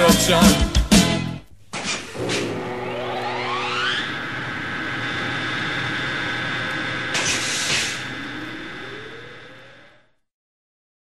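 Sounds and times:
rising whine of gliding tones: 2.1 - 10.3.

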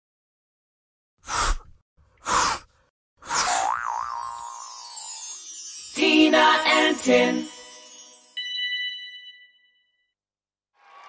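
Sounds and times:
bright falling shimmer with wobbling tone: 3.6 - 8.4.

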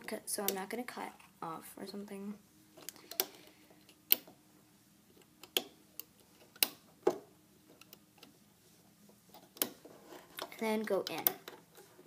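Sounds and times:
rubber bands clicking on plastic pins: 5.1 - 8.3, 9.3 - 11.8.

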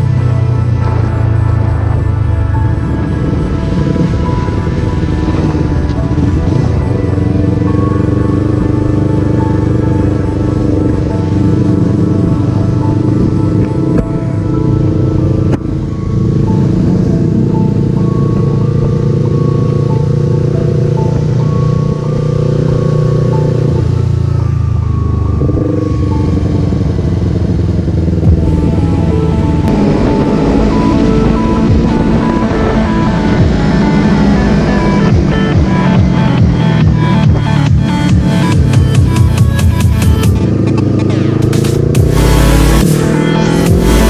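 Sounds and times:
background music: 0.0 - 44.0
motorcycle engine running: 0.0 - 44.0.

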